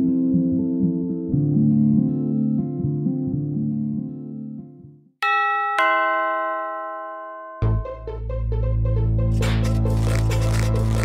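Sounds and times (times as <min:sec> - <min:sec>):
two-tone doorbell chime: 0:05.2 - 0:08.1.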